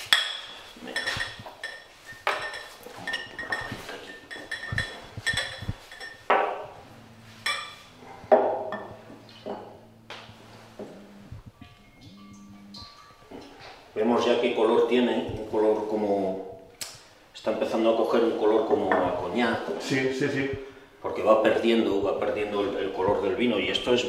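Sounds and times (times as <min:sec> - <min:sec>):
glassware clinking: 0:00.0 - 0:13.8.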